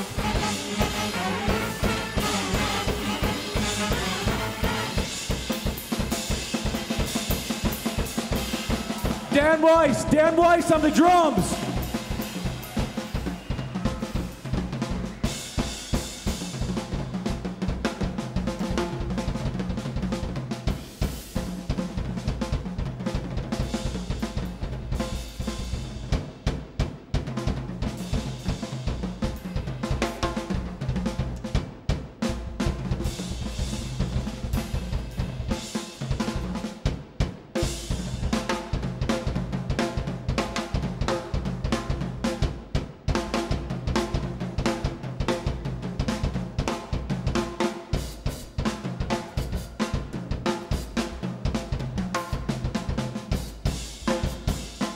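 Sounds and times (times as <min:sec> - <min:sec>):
drum kit played fast: 0:00.0 - 0:54.9.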